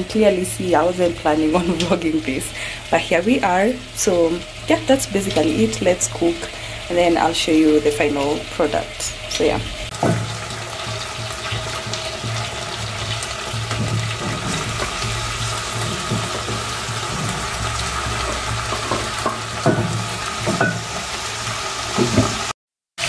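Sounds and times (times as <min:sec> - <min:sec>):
food sizzling in oil: 0:00.0 - 0:22.6.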